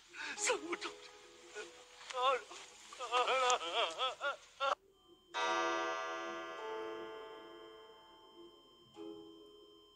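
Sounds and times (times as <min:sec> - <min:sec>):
bell-like note ringing: 0:05.0 - 0:09.9.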